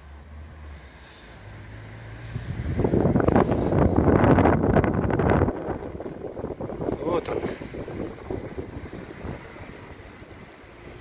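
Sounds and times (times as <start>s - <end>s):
wind buffeting microphone: 2.0s - 11.0s.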